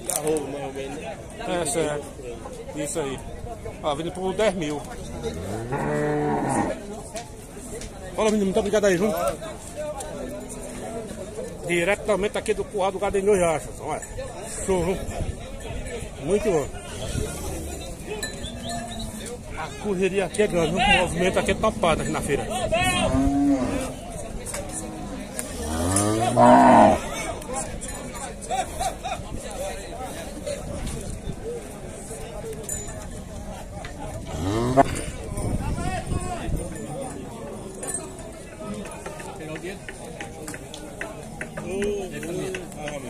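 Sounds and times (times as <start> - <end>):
cow mooing: 5.2 - 6.8, 22.9 - 24.0, 25.5 - 27.1, 34.3 - 35.0.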